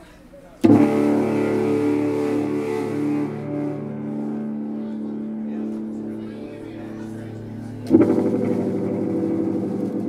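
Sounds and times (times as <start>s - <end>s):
electric guitar chord ringing: 0.7s - 10.0s.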